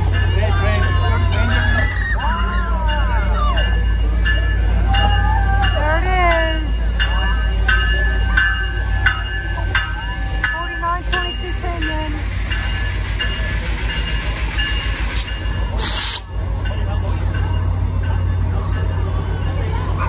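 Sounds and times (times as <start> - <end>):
diesel locomotive rumbling: 0.0 - 20.0
locomotive bell ringing: 0.0 - 20.0
hissing air bursts: 15.0 - 16.3.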